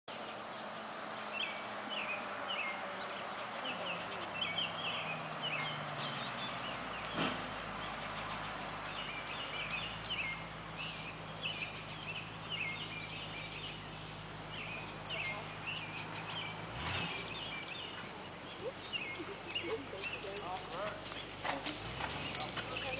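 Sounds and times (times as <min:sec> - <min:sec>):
songbirds chirping: 0:00.1 - 0:22.9.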